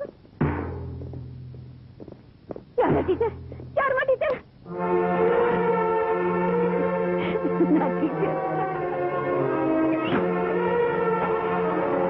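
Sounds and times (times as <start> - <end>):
deep timpani strikes: 0.3 - 2.0, 2.7 - 4.0.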